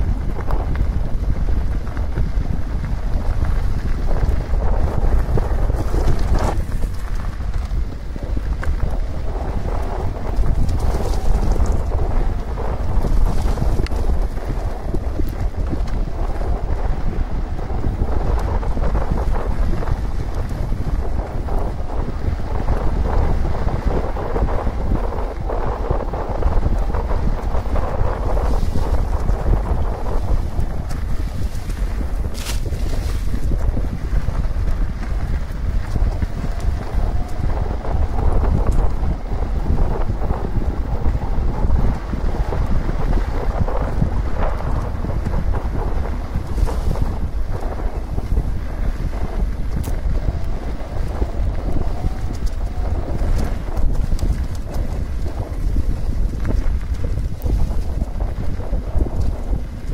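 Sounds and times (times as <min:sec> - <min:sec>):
bike tyres rolling on dirt: 0:00.0 - 0:59.9
wind buffeting microphone: 0:00.0 - 0:59.9.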